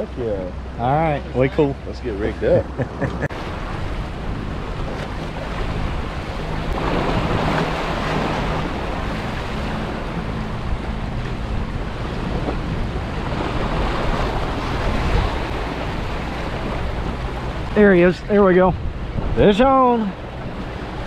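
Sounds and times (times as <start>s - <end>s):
wind buffeting microphone: 0.0s - 21.0s
surf breaking over rocks: 3.3s - 10.2s.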